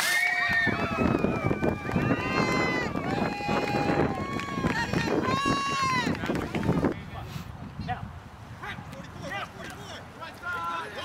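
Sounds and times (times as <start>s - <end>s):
high-pitched voices cheering: 0.0s - 6.2s.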